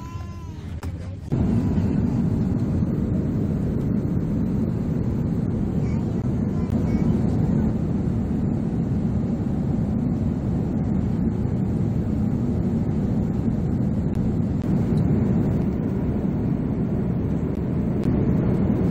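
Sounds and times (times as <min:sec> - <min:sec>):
airliner cabin rumble: 0:00.0 - 0:18.9.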